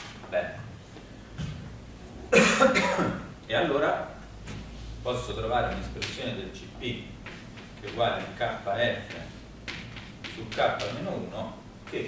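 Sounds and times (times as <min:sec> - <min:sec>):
man coughing: 0:02.3 - 0:03.3.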